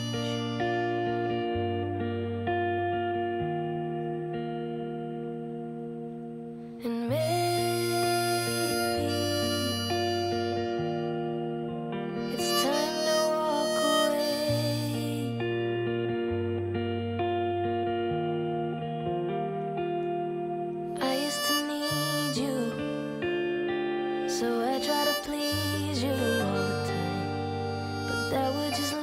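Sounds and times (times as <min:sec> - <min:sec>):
harmonica melody with vibrato: 0:00.0 - 0:29.0.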